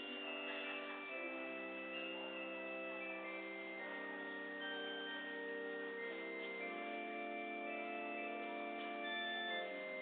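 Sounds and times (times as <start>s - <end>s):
pipe organ chords: 0.0s - 10.0s.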